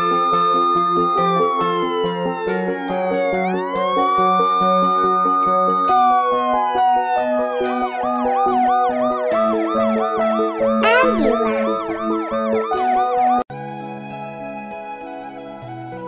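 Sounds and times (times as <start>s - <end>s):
background music: 10.8s - 12.0s.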